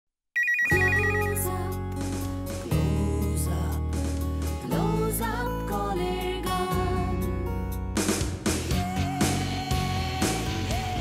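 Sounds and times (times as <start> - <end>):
electronic phone ringtone: 0.4 - 1.6.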